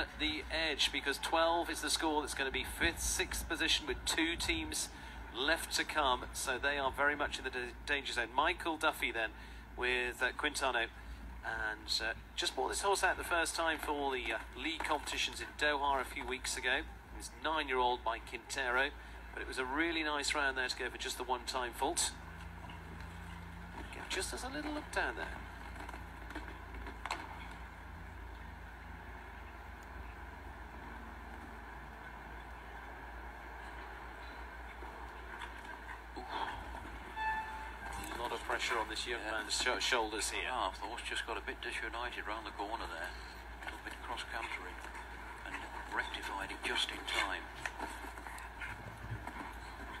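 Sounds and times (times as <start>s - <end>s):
arena background hum: 0.0s - 50.0s.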